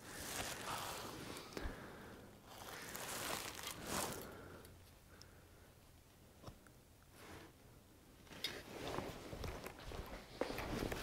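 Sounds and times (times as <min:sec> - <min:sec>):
gloved hands rustling: 0:00.0 - 0:01.8, 0:02.4 - 0:04.5.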